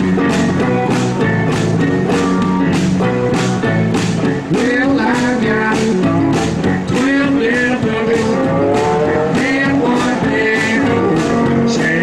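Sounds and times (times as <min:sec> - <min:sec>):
electric keyboard: 0:00.0 - 0:12.0
slide guitar: 0:00.0 - 0:12.0
steady drum beat: 0:00.0 - 0:12.0.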